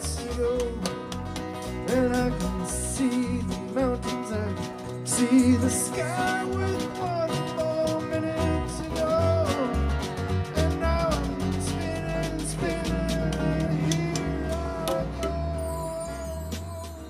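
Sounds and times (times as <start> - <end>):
electric bass: 0.0 - 17.0
hand percussion: 0.0 - 17.0
strummed acoustic guitar: 0.0 - 17.0.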